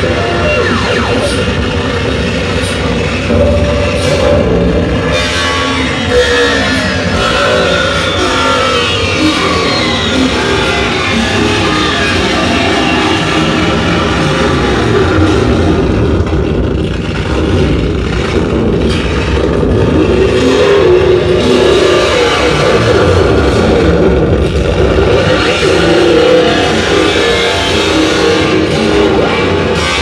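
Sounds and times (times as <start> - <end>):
churning low rumble: 0.0 - 30.0
harsh distorted electronic noise: 0.0 - 30.0
wavering drone: 0.0 - 30.0.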